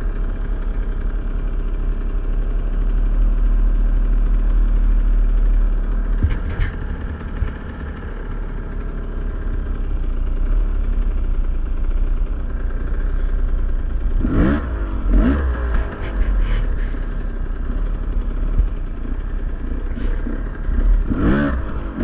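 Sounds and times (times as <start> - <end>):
dirt bike engine idling: 0.0 - 22.0
dirt bike engine revving: 5.9 - 9.5, 13.9 - 22.0.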